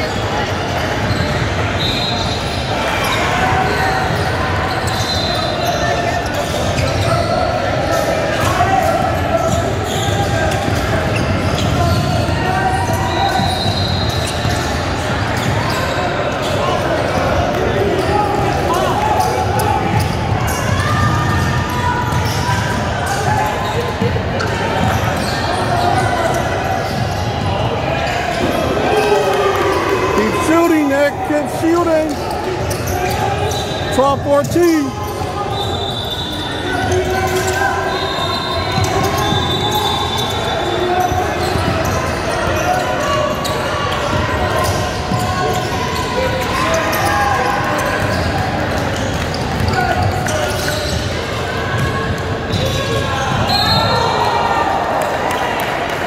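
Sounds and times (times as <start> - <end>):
voices in echoing hall: 0.0 - 56.0.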